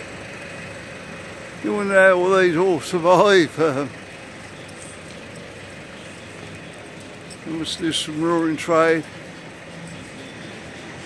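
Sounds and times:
street background hum: 0:00.0 - 0:11.0.

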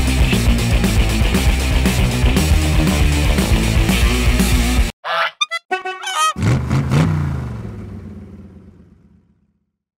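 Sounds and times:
squeeze horn honking: 0:05.0 - 0:06.8
engine revving: 0:06.4 - 0:09.2.

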